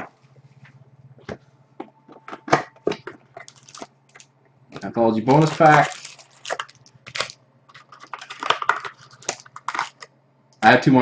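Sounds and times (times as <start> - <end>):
foil card packs crinkling: 3.4 - 10.1.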